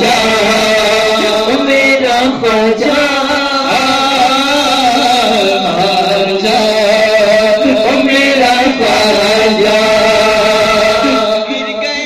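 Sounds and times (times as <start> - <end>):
man chanting through microphone: 0.0 - 12.0.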